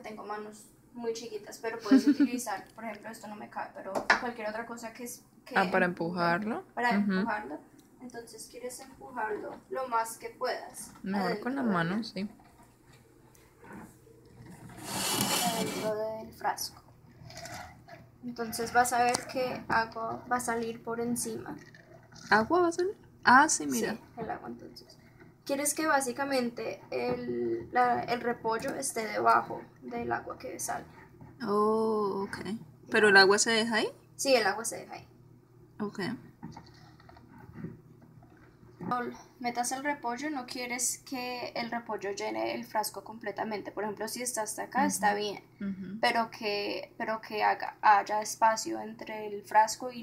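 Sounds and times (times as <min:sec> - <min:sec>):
person speaking: 0:14.8 - 0:16.7, 0:44.8 - 0:45.9.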